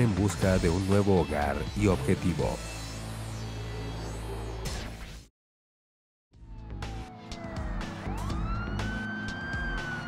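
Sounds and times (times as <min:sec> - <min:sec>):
police siren wailing: 0:06.4 - 0:10.0.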